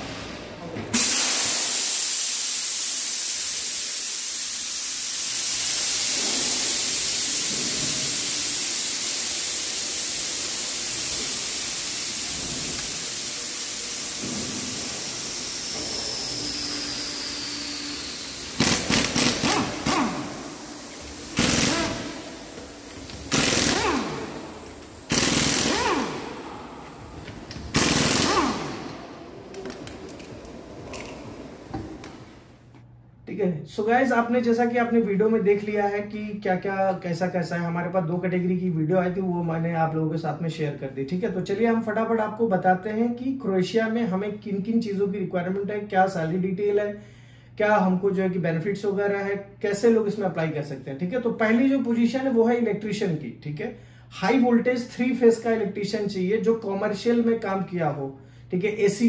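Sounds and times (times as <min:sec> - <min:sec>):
compressed air hissing: 0:01.0 - 0:30.1
pneumatic impact wrench rattling: 0:01.0 - 0:32.3.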